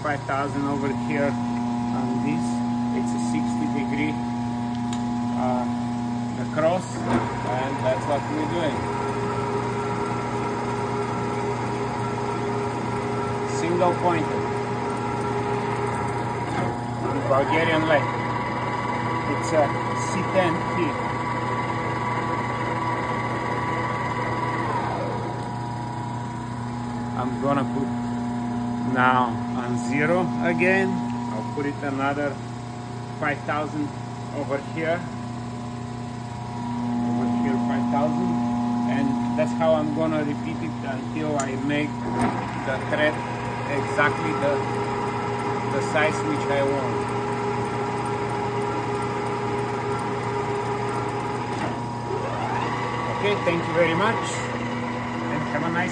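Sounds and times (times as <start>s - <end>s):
lathe gear whine: 0.0s - 55.9s.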